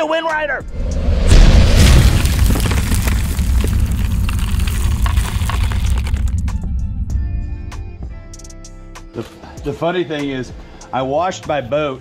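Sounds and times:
deep boom: 0.6s - 8.4s
low rumble with crackling: 0.7s - 8.2s.

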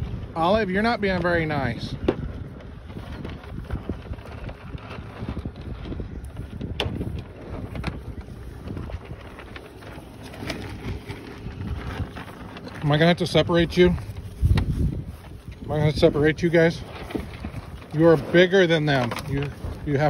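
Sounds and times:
cattle eating from trough: 0.0s - 20.0s
wind rumbling on microphone: 0.0s - 20.0s.

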